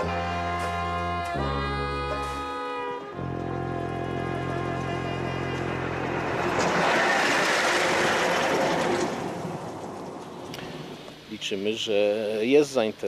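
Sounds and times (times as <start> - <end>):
railcar engine drone: 0.0 - 13.0
wheel-on-rail rush: 3.6 - 11.4.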